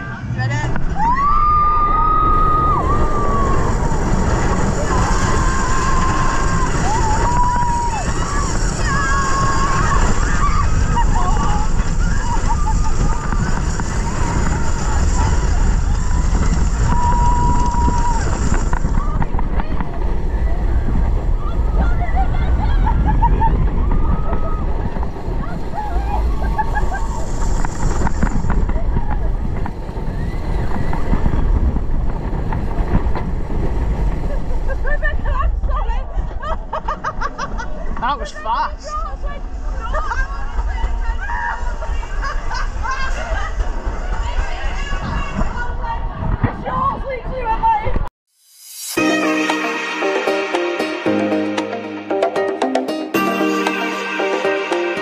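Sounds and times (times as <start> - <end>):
riders screaming and whooping: 0.0 - 32.9, 39.5 - 47.0
wind buffeting camera: 0.0 - 38.0, 39.2 - 48.1
roller coaster rumbling on track: 0.0 - 48.1.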